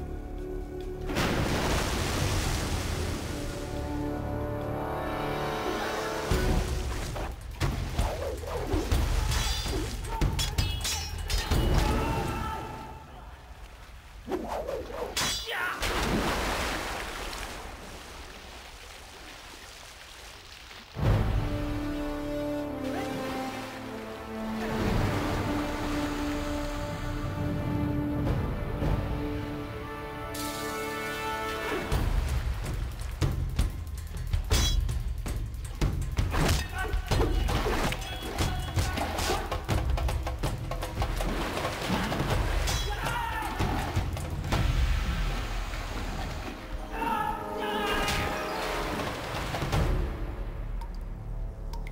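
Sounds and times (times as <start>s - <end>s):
dramatic film score: 0.0s - 15.8s, 20.9s - 51.9s
feet splashing through water: 15.8s - 21.4s, 40.6s - 46.8s.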